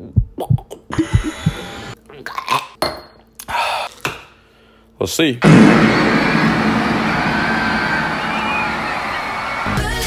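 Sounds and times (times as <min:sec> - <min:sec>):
loud rushing noise: 0:05.4 - 0:09.6
high whistling glides: 0:05.8 - 0:09.6
music: 0:09.6 - 0:10.0.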